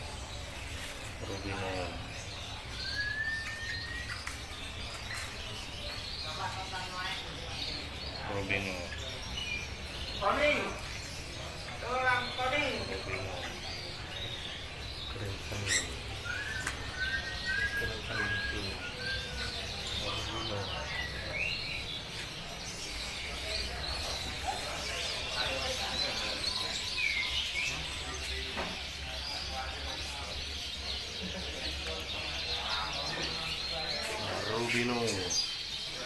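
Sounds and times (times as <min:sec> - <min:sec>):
parrots chirping: 0:00.0 - 0:36.0.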